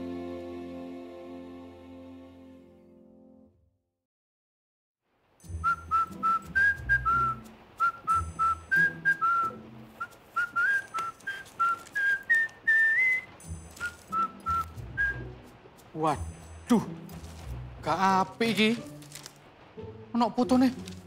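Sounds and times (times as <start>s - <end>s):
person whistling a melody: 5.5s - 15.3s.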